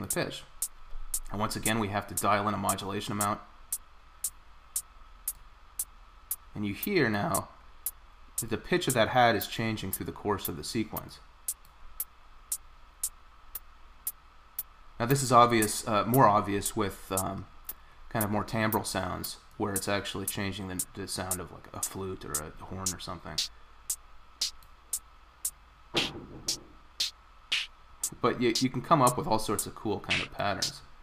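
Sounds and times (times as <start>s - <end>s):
electronic hi-hat ticking: 0.0s - 10.0s, 11.0s - 18.3s, 21.8s - 30.8s
fuller drum hit: 26.0s - 28.2s.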